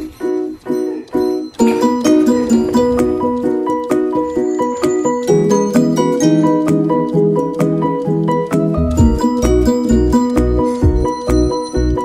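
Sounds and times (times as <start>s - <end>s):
bright melody over steady beat: 0.0s - 12.0s.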